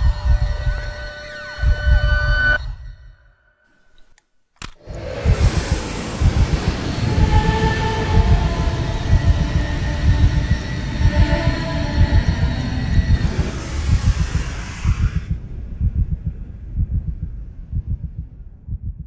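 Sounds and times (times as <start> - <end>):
dense low rumble: 4.9 - 19.0
rushing hiss: 5.0 - 8.8, 13.2 - 15.4.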